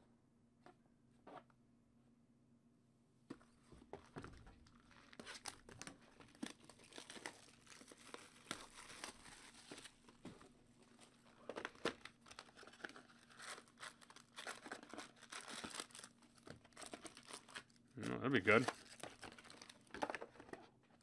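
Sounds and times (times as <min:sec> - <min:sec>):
wrappers crinkling and tearing: 0:04.6 - 0:10.2, 0:10.9 - 0:20.4.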